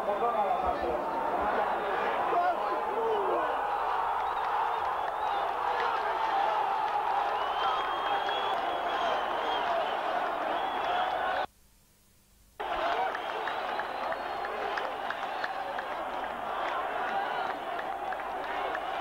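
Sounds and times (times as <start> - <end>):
stadium crowd cheering and shouting: 0.0 - 11.5, 12.6 - 19.0
people clapping: 0.6 - 11.5, 12.6 - 19.0.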